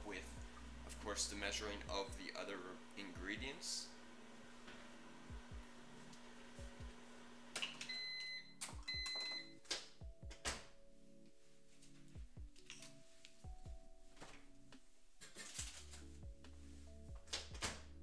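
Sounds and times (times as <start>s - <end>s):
low hum: 0.0s - 2.2s
microwave oven beeping: 3.9s - 9.6s.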